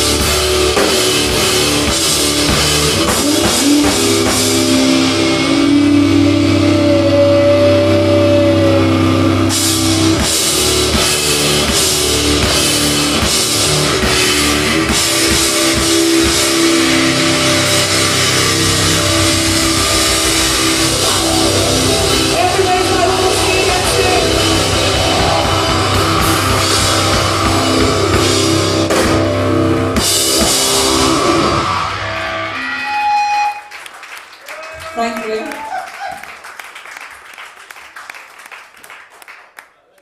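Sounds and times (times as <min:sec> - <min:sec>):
bass guitar: 0:00.0 - 0:33.6
drum kit: 0:00.0 - 0:33.8
electric guitars: 0:00.0 - 0:34.0.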